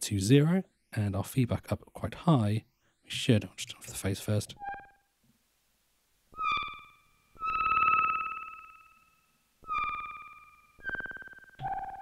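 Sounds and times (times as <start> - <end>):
short high synth notes: 6.4 - 12.0.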